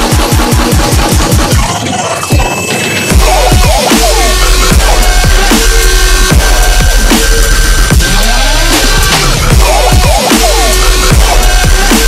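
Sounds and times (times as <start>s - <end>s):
dubstep music: 0.0s - 12.0s.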